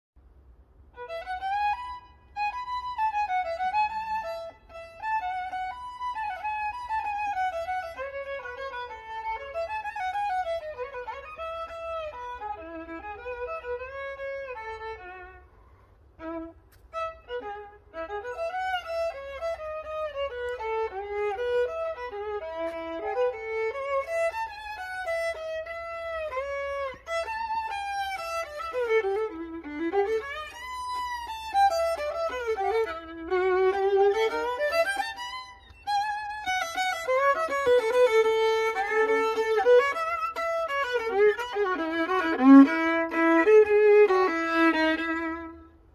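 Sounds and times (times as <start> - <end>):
solo violin melody: 0.8 - 45.9.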